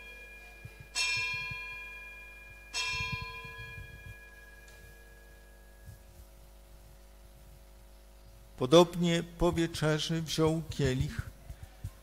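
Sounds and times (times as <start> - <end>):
altar bell ringing: 0.0 - 6.2.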